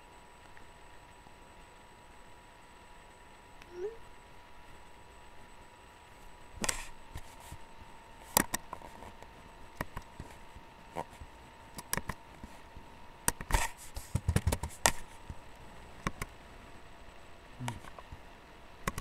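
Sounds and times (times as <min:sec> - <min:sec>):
faint electrical tone: 0:00.0 - 0:19.0
sharp clicks and knocks: 0:13.3 - 0:15.0.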